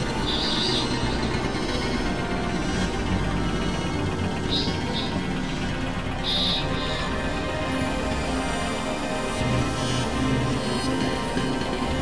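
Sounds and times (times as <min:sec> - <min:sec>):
dark synthesizer drone: 0:00.0 - 0:12.0.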